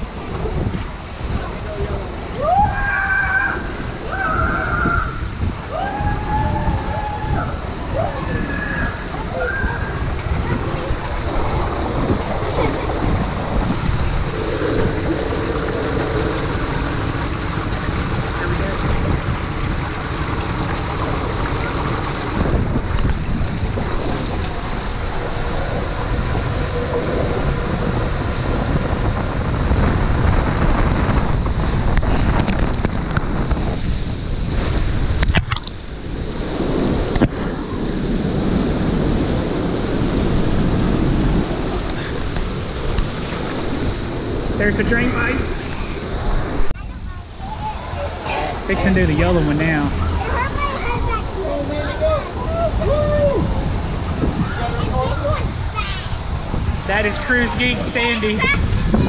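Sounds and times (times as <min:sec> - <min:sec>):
water rushing: 0:00.0 - 0:59.0
rider sliding down plastic tube: 0:06.4 - 0:46.8.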